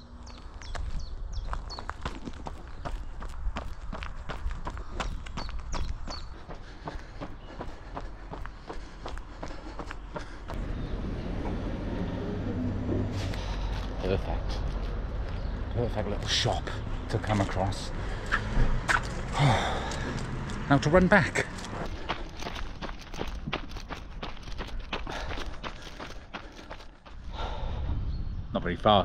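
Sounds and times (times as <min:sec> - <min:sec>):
running footsteps on pavement: 0:00.3 - 0:10.7, 0:13.2 - 0:27.6
steady low noise: 0:10.6 - 0:15.3.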